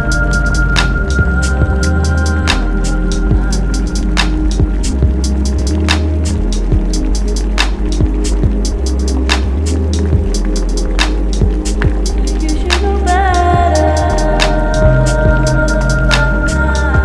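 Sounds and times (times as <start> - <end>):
deep sustained bass line: 0.0 - 17.0.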